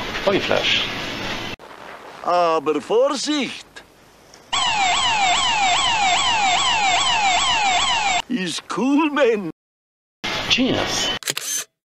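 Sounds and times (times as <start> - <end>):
whooping electronic alarm: 4.5 - 8.2.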